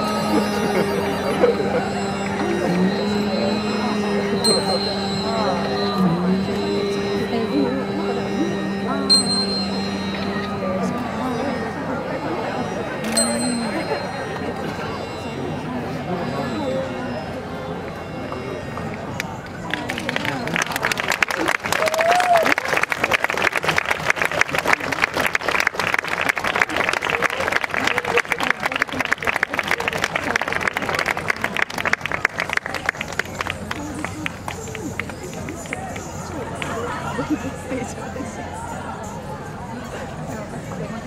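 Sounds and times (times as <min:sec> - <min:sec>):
classical ensemble playing: 0:00.0 - 0:15.3
person singing: 0:00.0 - 0:17.0
crowd chatter: 0:00.0 - 0:41.0
audience applauding: 0:19.6 - 0:37.3.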